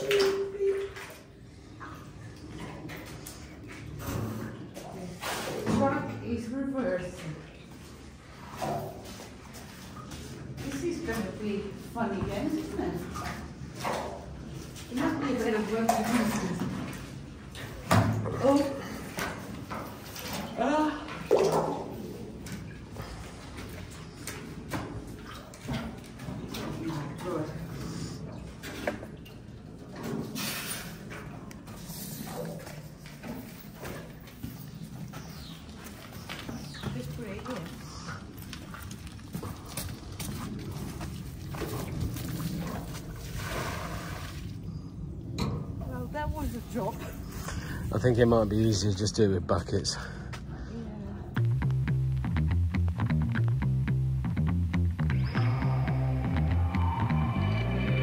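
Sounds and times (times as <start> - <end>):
wheelbarrow pushed with water: 0.0 - 44.9
voices: 36.6 - 38.3.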